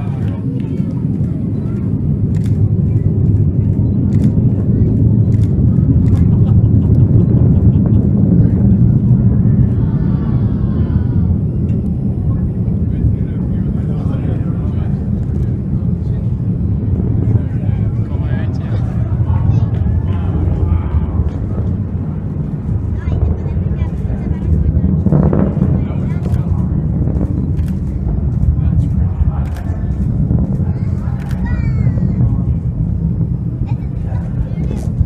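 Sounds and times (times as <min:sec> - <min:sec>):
distant rocket launch roar: 0:00.0 - 0:35.0
faint voices: 0:00.0 - 0:35.0.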